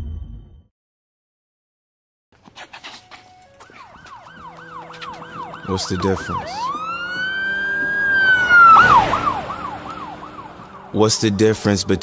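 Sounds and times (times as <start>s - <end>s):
electronic siren wailing and yelping: 3.1s - 11.0s.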